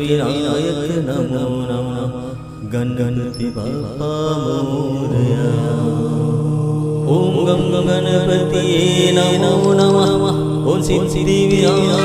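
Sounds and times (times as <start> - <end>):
chanted devotional song: 0.0 - 12.0
low backing drone: 0.0 - 12.0.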